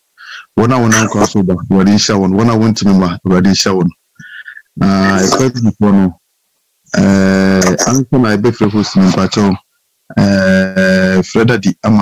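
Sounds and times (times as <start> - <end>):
person talking over video call: 0.2 - 6.2, 6.9 - 12.0.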